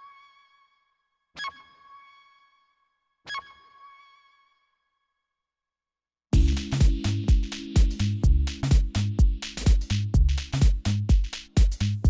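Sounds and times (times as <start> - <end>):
electronic dance music: 6.4 - 12.0.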